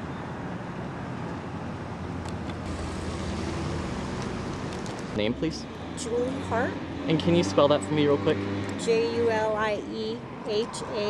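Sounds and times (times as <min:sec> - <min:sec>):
street noise: 0:00.0 - 0:11.0
vehicle engine rumble: 0:00.0 - 0:11.0.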